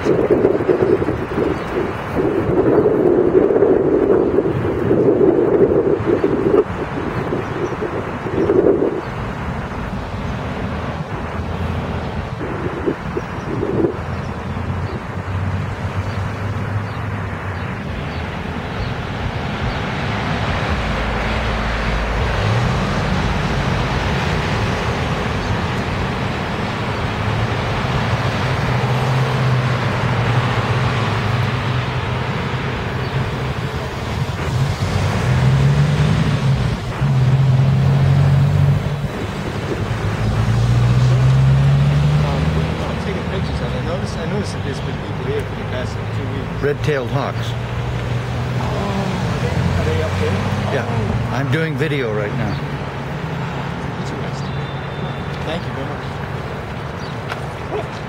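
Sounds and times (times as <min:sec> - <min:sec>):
city traffic roar: 0:00.0 - 0:58.0
vehicle engine rising in pitch: 0:18.1 - 0:56.0.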